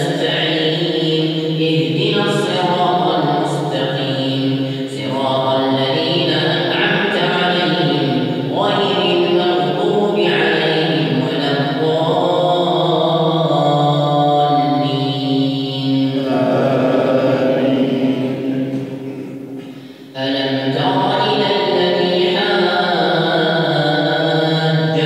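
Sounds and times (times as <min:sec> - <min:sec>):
man chanting: 0:15.9 - 0:19.4.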